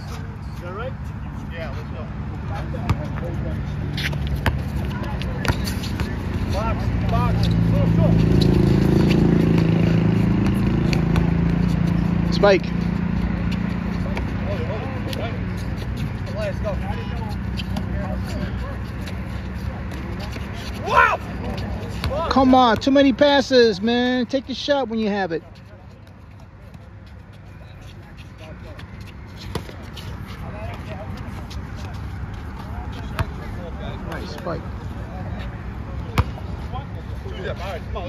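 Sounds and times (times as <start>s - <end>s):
distant players' voices: 0.0s - 38.0s
basketball bouncing on asphalt: 4.0s - 14.8s, 17.1s - 18.1s, 21.9s - 23.0s, 28.7s - 29.9s, 30.5s - 33.5s, 36.0s - 36.6s.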